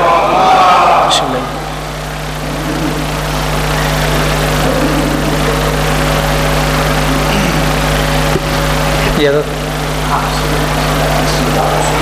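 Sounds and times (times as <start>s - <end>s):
loud machine drone: 0.0s - 12.0s.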